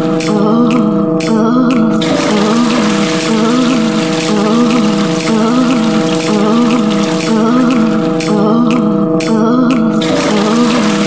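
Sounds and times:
droning tones: 0:00.0 - 0:11.0.

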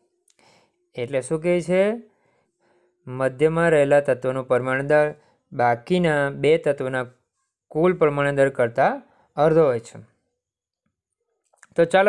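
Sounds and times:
man speaking: 0:01.0 - 0:02.1, 0:03.1 - 0:10.1, 0:11.6 - 0:12.0.

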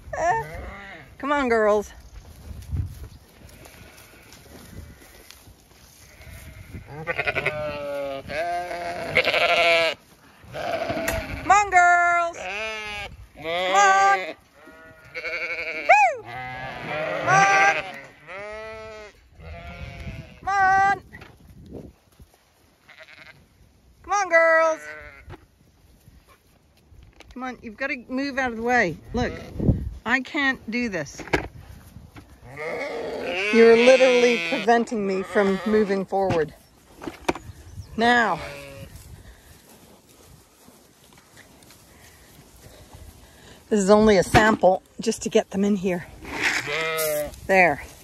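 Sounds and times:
sheep bleating: 0:00.1 - 0:01.2, 0:03.4 - 0:05.3, 0:05.9 - 0:21.0, 0:22.8 - 0:23.4, 0:24.2 - 0:25.3, 0:32.4 - 0:36.1, 0:38.0 - 0:39.0, 0:46.4 - 0:47.5.

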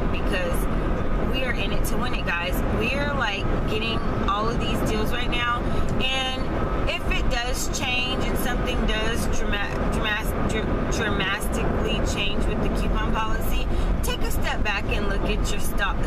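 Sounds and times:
car road and engine rumble: 0:00.0 - 0:16.0
woman talking: 0:00.0 - 0:16.0.

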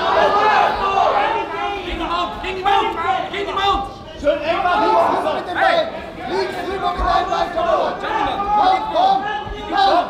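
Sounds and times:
crowd chatter in a large hall: 0:00.0 - 0:10.0
voices talking and calling out: 0:00.0 - 0:10.0.

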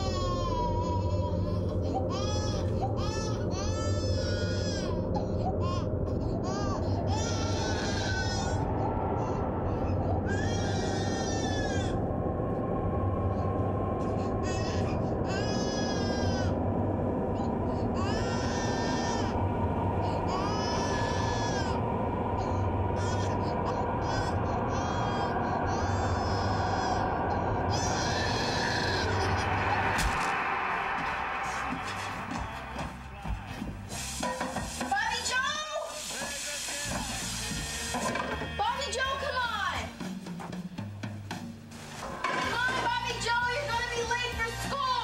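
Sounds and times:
baby crying: 0:00.0 - 0:12.0, 0:14.1 - 0:16.6, 0:17.4 - 0:19.4, 0:20.0 - 0:21.8, 0:22.4 - 0:30.4
low droning music: 0:00.0 - 0:34.2, 0:37.2 - 0:45.0
sharp hit: 0:29.7 - 0:32.8
hiss: 0:33.8 - 0:38.1.

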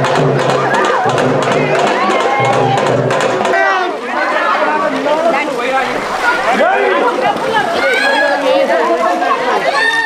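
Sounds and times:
people talking and shouting: 0:00.0 - 0:10.0.

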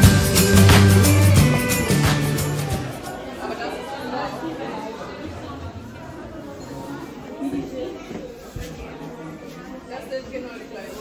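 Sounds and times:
faint background chatter: 0:01.5 - 0:11.0.

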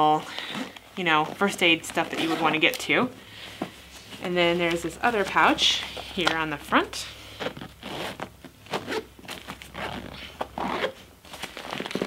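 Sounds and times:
zipper being pulled open: 0:00.4 - 0:02.8, 0:07.3 - 0:12.0.

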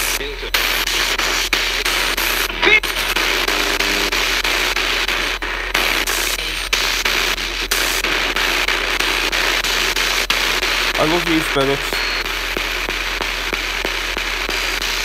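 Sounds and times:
radio static hiss: 0:00.0 - 0:15.0.

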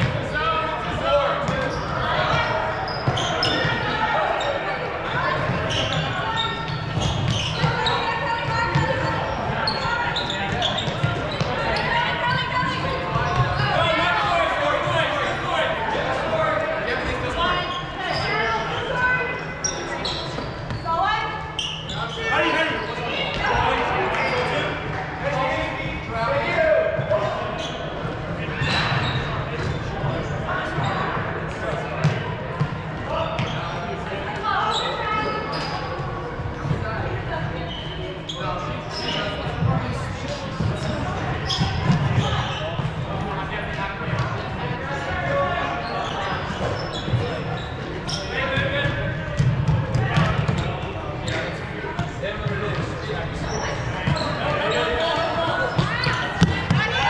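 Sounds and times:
players' voices calling out: 0:00.0 - 0:57.0.

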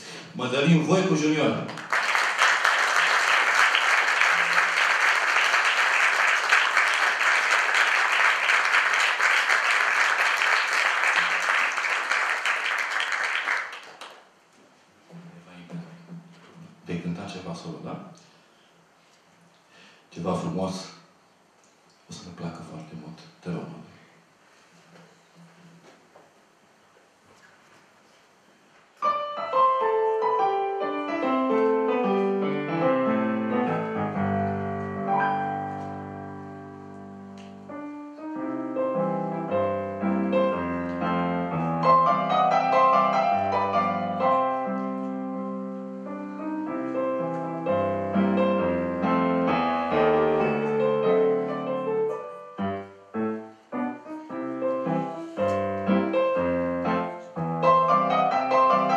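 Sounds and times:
solo piano: 0:29.0 - 0:58.9.

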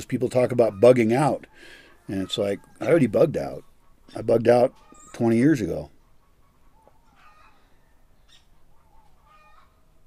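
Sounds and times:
chickens clucking: 0:00.0 - 0:10.0.

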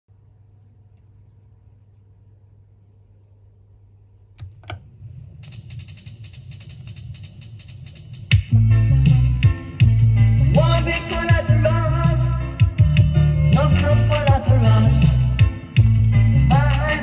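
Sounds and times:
turntable low hum: 0:00.1 - 0:17.0
stylus clicks on record: 0:04.4 - 0:07.0
reggae music with hi-hat percussion: 0:05.4 - 0:17.0.

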